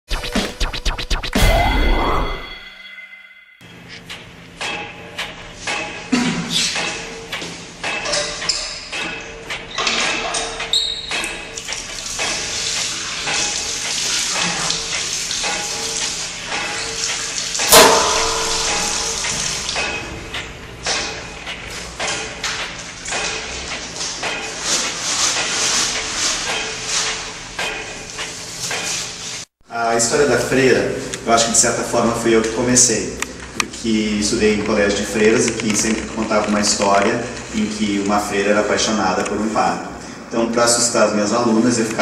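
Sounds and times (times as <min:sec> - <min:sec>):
record scratching: 0:00.1 - 0:02.2
loud hit with ringing tail: 0:01.4 - 0:03.6, 0:17.7 - 0:20.2
water running from a tap: 0:10.8 - 0:20.0, 0:23.4 - 0:27.4.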